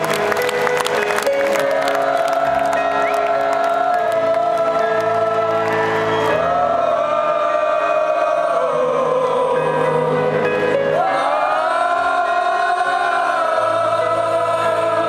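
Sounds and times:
crowd cheering and singing along: 0.0s - 15.0s.

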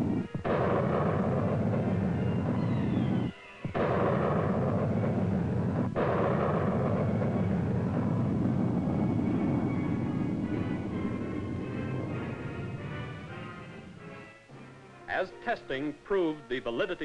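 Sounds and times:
rocket booster roaring: 0.0s - 14.1s
music: 0.0s - 17.0s.

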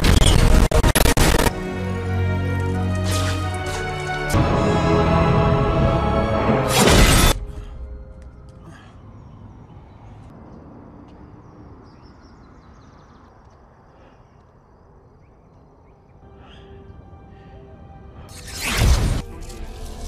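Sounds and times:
loud film music: 0.0s - 8.6s, 16.2s - 20.0s.

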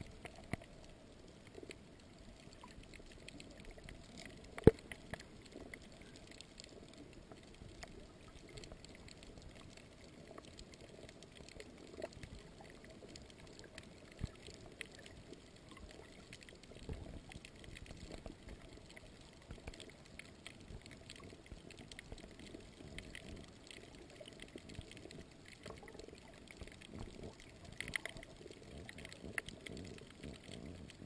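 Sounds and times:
muffled underwater noise: 0.0s - 31.0s.

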